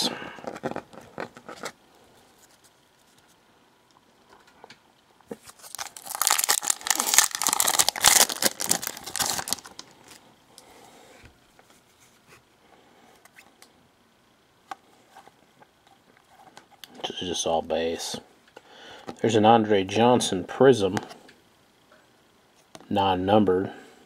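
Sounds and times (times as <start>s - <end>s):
wrapper crinkling and tearing: 5.3s - 10.2s.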